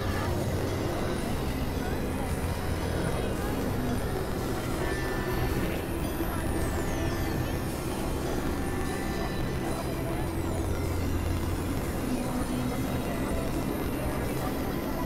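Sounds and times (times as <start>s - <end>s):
low rumbling electronic drone: 0.0s - 15.0s.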